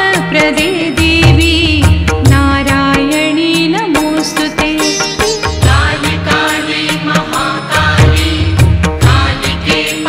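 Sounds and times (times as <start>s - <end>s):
percussion strikes: 0.0s - 10.0s.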